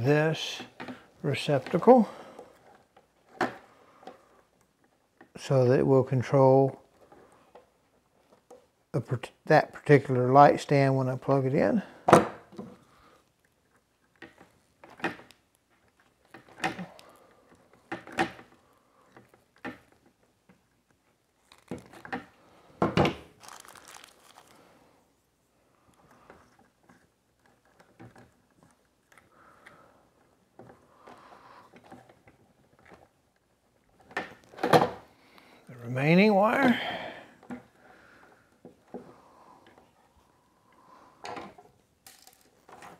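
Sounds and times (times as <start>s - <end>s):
small clicks and knocks of wires: 12.5s - 22.4s, 25.8s - 34.7s, 41.2s - 42.9s.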